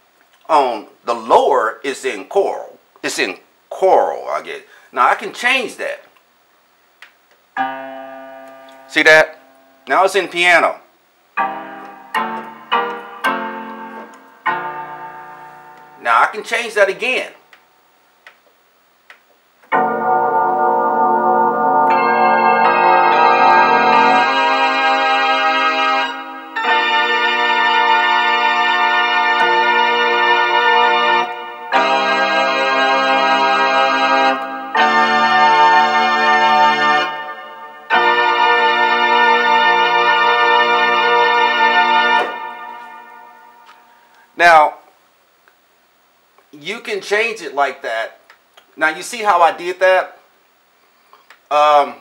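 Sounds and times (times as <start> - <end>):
synthesizer chords: 11.4 - 16.4, 19.7 - 44.1.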